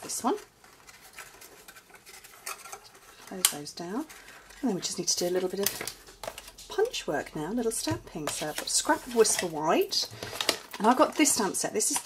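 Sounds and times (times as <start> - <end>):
cardstock rustling: 0.0 - 12.0.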